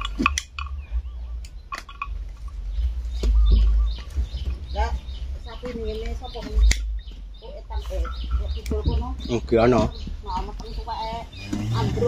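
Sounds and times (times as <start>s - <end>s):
low rumble: 0.0s - 12.0s
small birds chirping: 0.0s - 12.0s
sharp clicks: 6.0s - 7.1s.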